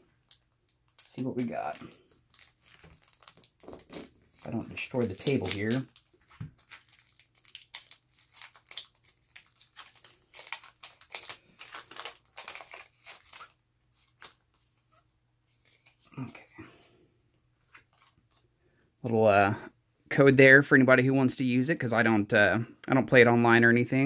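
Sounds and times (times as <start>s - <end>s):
foil wrapper crinkling and tearing: 0.1s - 14.6s.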